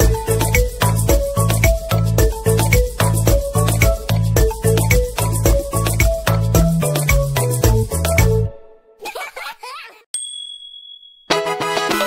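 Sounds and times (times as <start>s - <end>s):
bright chime ding: 10.2s - 11.3s.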